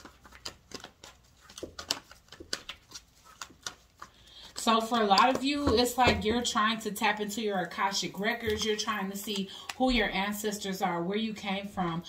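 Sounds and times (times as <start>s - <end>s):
cards shuffling: 0.0s - 6.1s, 8.4s - 9.9s.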